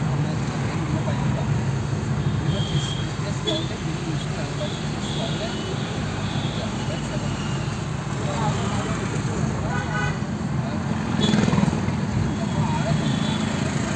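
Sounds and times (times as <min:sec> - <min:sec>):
indistinct voices talking: 0:00.0 - 0:13.9
vehicle engine and road hum: 0:00.0 - 0:13.9.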